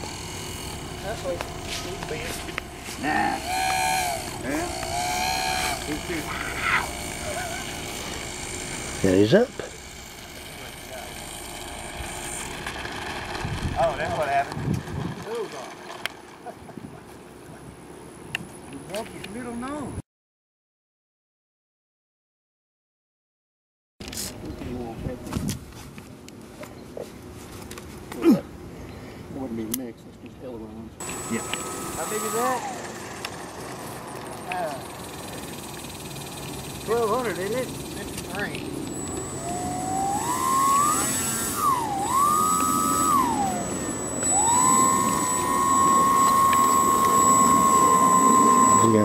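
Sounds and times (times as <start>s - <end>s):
thin high whine: 0.0s - 14.6s, 31.0s - 49.0s
model plane electric motors: 0.0s - 16.7s, 31.0s - 49.0s
people talking indistinctly: 36.7s - 38.7s.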